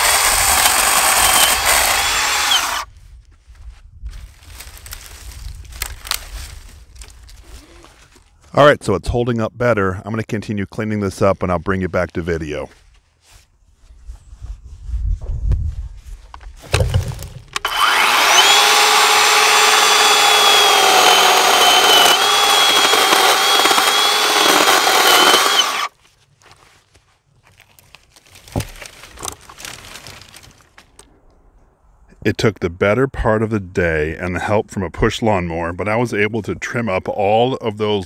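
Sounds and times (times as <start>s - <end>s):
electric chainsaw whining: 0.0s - 2.9s, 17.6s - 25.9s.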